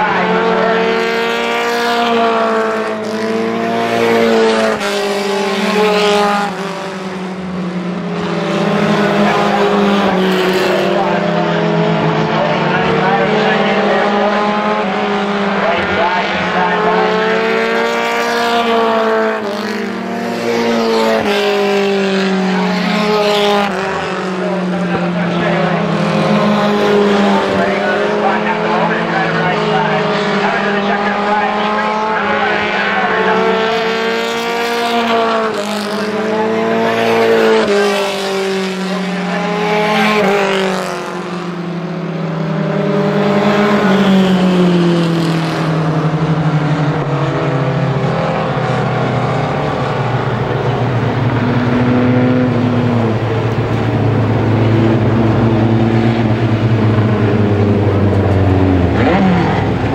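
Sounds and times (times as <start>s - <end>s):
racing car engines: 0.0s - 59.9s.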